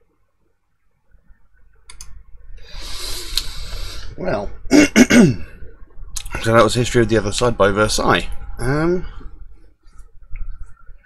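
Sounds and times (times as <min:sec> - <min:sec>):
man breathing out: 0:02.6 - 0:04.1
man clearing throat: 0:04.7 - 0:05.5.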